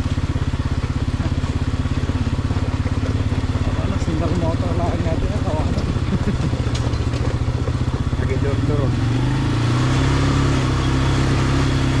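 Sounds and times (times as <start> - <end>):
atv engine running: 0.0 - 12.0
tires on gravel road: 0.0 - 12.0.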